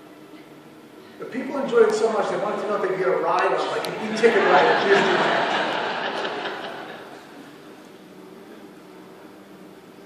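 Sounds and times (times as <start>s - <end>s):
low room noise hiss: 0.0s - 10.0s
audience laughter and murmur: 2.5s - 7.8s.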